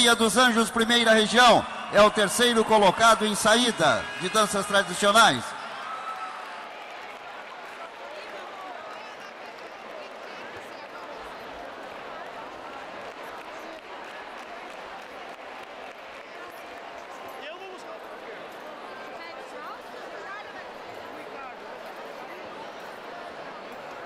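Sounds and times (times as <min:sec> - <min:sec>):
large crowd murmur in hall: 0:00.0 - 0:24.0.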